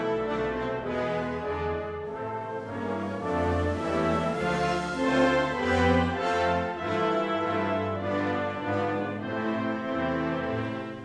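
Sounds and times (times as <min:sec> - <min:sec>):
orchestral brass music: 0:00.0 - 0:11.0.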